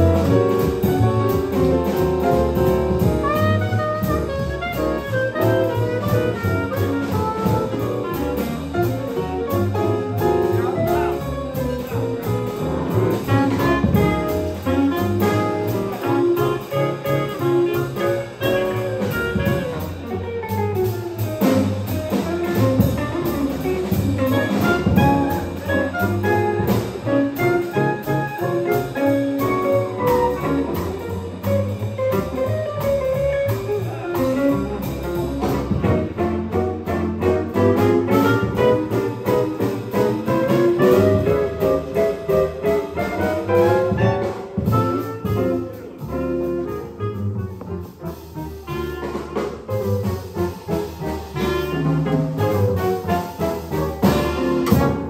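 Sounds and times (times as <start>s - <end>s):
clarinet: 0.0s - 55.0s
drums on cymbals: 0.0s - 55.0s
piano: 0.0s - 55.0s
plucked upright bass: 0.0s - 55.0s.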